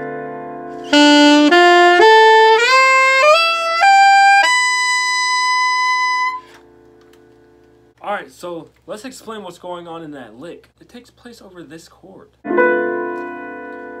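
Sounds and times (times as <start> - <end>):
alto saxophone arpeggio: 0.9 - 6.6.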